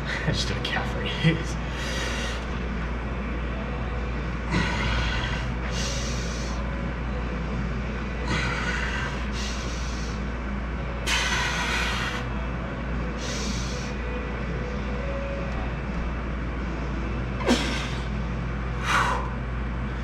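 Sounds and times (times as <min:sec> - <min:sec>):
steady low hum: 0:00.0 - 0:20.0
man breathing hard: 0:01.6 - 0:02.6, 0:04.5 - 0:06.7, 0:08.2 - 0:10.4, 0:11.0 - 0:12.4, 0:13.1 - 0:14.0, 0:18.8 - 0:19.5.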